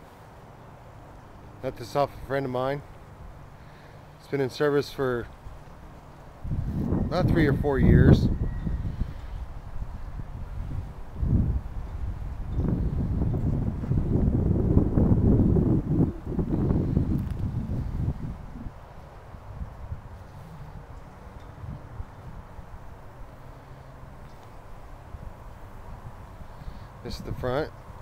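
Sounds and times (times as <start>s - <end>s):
wind buffeting microphone: 5.4s - 28.0s.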